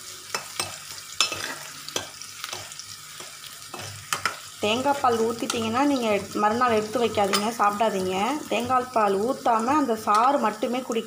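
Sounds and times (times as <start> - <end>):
onions sizzling in oil: 0.0 - 11.0
steel spoon scraping a pan: 0.2 - 7.7.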